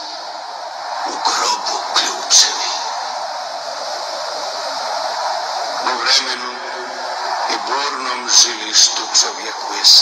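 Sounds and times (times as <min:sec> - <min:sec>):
steady background hiss: 0:00.0 - 0:10.0
man reciting: 0:01.1 - 0:02.9.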